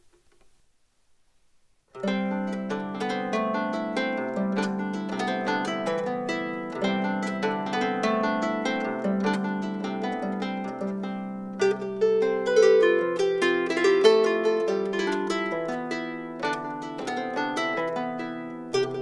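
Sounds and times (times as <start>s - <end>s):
harp plucked melody: 2.0s - 19.0s.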